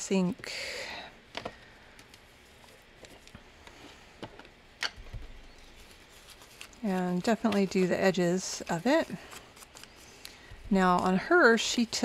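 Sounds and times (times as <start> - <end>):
paper handling: 5.0 - 12.0.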